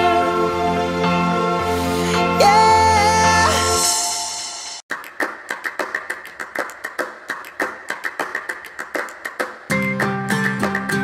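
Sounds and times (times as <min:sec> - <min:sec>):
hands clapping and slapping: 0:04.9 - 0:11.0.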